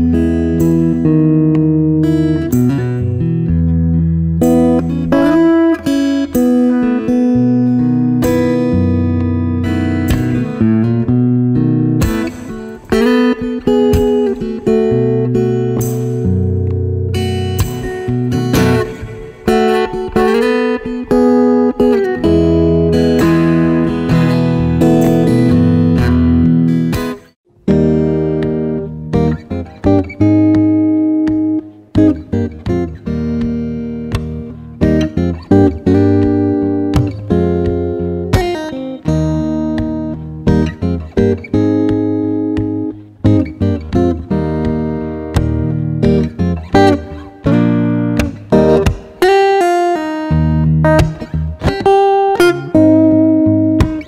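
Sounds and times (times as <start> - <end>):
fingerstyle acoustic guitar: 0.0 - 54.0.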